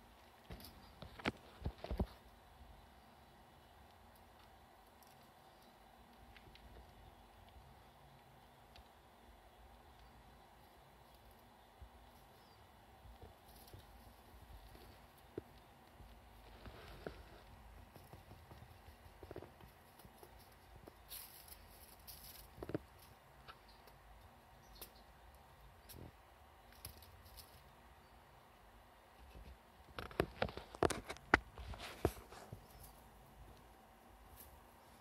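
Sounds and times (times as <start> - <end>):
squirrel clicks and scratches: 0.0 - 35.0.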